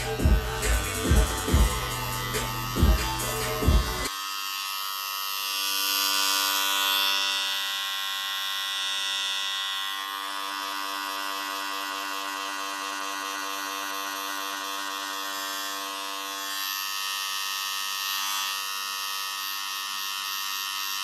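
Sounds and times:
electric hair clippers buzzing: 0:00.0 - 0:21.0.

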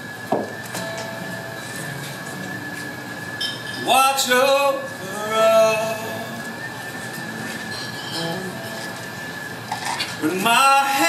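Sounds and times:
room noise: 0:00.0 - 0:11.0
steady high mechanical whistle: 0:00.0 - 0:11.0.

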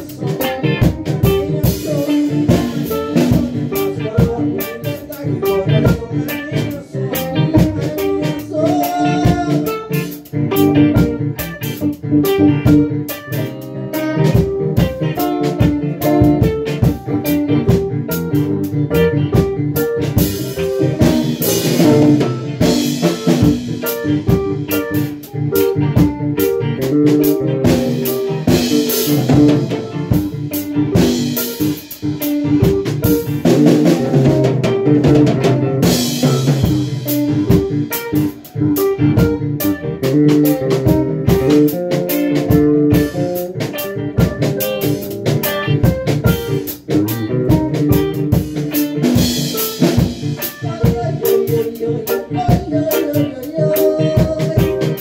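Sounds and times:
drum kit: 0:00.0 - 0:55.0
electric guitar: 0:00.0 - 0:55.0.

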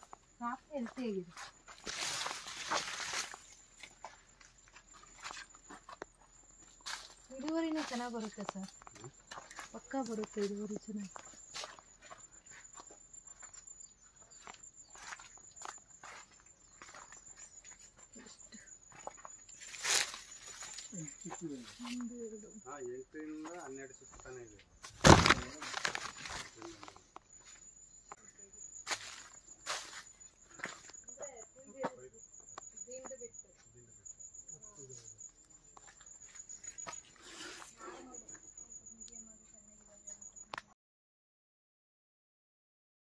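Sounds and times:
footsteps rustling through plants: 0:00.0 - 0:13.6, 0:14.3 - 0:22.2, 0:24.8 - 0:27.6, 0:28.8 - 0:31.0
insect trilling: 0:00.0 - 0:40.6.

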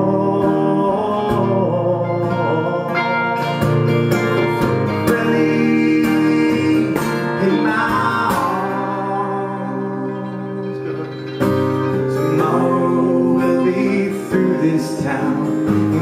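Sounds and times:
man singing: 0:00.0 - 0:11.3, 0:12.0 - 0:16.0
strummed acoustic guitar: 0:00.0 - 0:16.0.

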